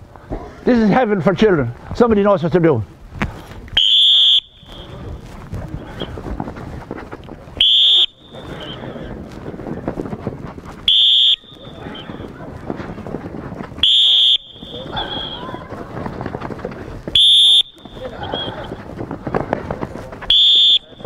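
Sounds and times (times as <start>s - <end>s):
running footsteps: 0.0s - 21.0s
whistle blasts: 3.8s - 5.0s, 7.6s - 8.8s, 10.9s - 12.1s, 13.8s - 15.5s, 17.1s - 18.7s, 20.3s - 21.0s
voices of children and adults: 11.5s - 13.8s, 14.6s - 17.2s, 17.8s - 21.0s.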